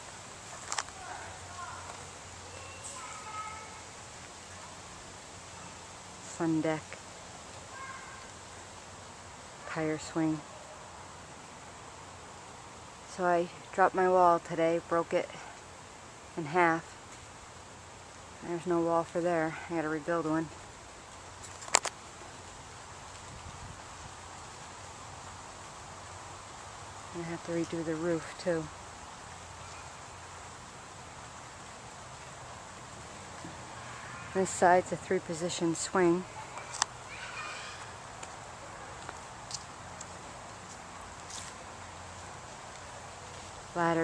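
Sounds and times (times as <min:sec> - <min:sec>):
faint outdoor background noise: 0:00.0 - 0:44.0
soft hiss of trees and air: 0:00.0 - 0:44.0.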